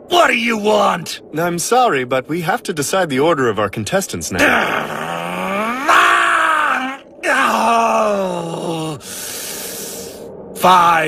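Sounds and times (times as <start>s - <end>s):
man yawning loudly: 4.4s - 9.1s
steady hiss: 8.9s - 11.0s.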